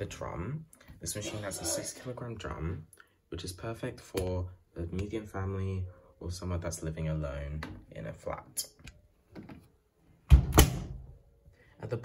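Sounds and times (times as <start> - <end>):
washing machine door thump: 10.3 - 11.1.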